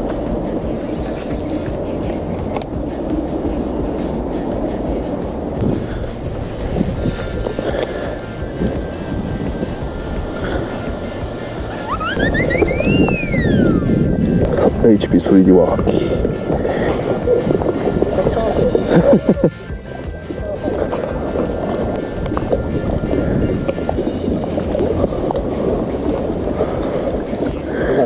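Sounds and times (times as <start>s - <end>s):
faint background music: 0.0s - 28.0s
wind rumbling on microphone: 0.0s - 28.0s
rising and falling electronic whistle: 11.8s - 14.0s.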